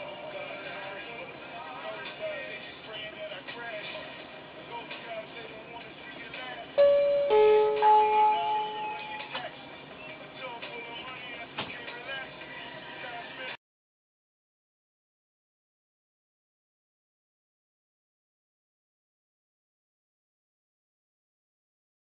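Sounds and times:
background music with singing: 0:00.0 - 0:13.6
electronic door chime: 0:06.8 - 0:09.3.

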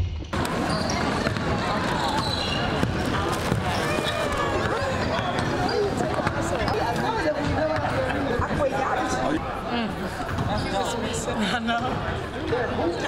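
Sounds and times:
many voices talking: 0:00.3 - 0:13.0
basketballs bouncing on hardwood: 0:00.4 - 0:06.8.

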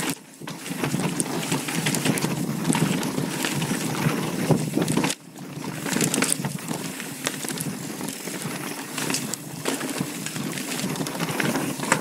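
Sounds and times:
bike tyres on rocky trail: 0:00.0 - 0:12.0.

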